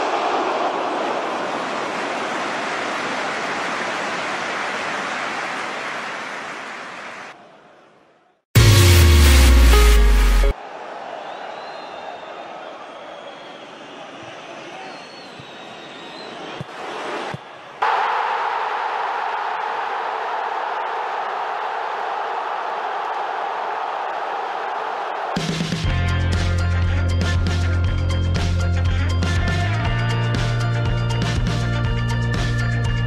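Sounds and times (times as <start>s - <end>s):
crowd cheering: 0.0s - 9.3s, 10.2s - 26.3s
music: 8.6s - 10.6s, 25.4s - 33.0s
faint whistles: 11.2s - 16.7s.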